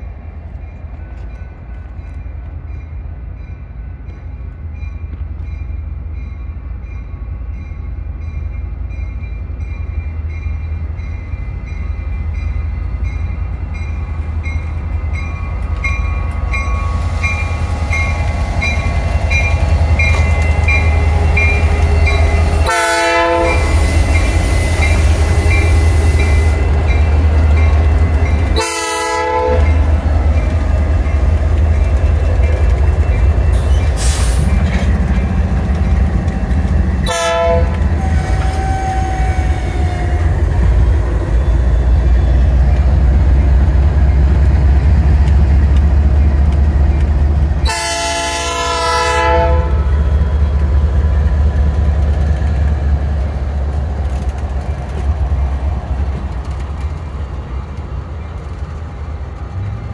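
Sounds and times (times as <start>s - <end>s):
diesel locomotive engines rumbling: 0.0s - 59.9s
locomotive bell ringing: 1.2s - 33.6s
air horn blasts: 22.6s - 23.8s, 28.6s - 29.7s, 37.0s - 39.4s, 47.6s - 49.9s.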